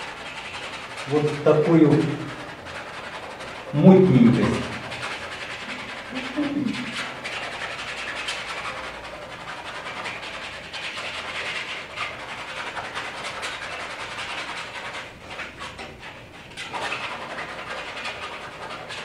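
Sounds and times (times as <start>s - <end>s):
paint scraped over canvas: 0.0s - 19.0s.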